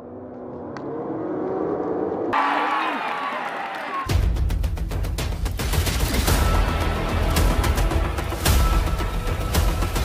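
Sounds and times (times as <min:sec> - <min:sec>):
crowd shouting and cheering: 0:02.3 - 0:04.4.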